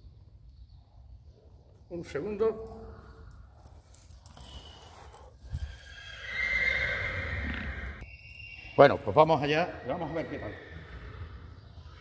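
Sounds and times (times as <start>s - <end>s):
horse whinnying: 5.5s - 12.0s.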